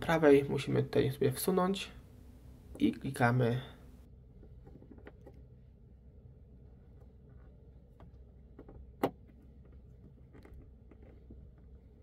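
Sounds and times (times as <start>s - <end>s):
low background rumble: 0.6s - 12.0s.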